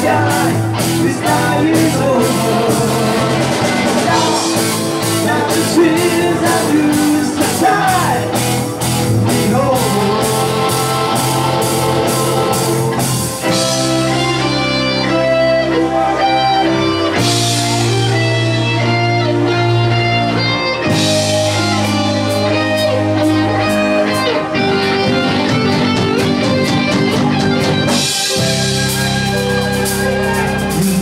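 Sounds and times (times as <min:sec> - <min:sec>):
electric guitar chords: 0:00.0 - 0:31.0
live rock band playing: 0:00.0 - 0:31.0.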